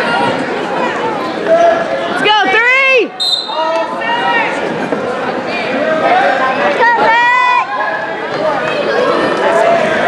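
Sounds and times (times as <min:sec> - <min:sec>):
high whistle tone: 0:03.2 - 0:03.6.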